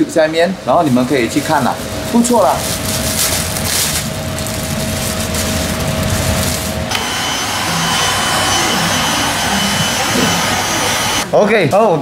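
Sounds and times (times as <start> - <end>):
steady hum: 0.0 - 11.5
plastic bag crinkling: 0.9 - 6.9
heat gun blowing: 6.3 - 11.2.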